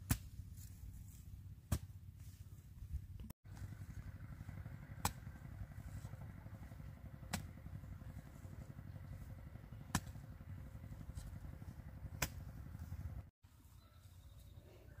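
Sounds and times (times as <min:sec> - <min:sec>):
hand hoe chopping into soil: 0:00.0 - 0:00.9, 0:01.7 - 0:01.9, 0:07.3 - 0:07.5, 0:09.9 - 0:10.2, 0:12.2 - 0:12.5
low rumble: 0:03.5 - 0:13.3.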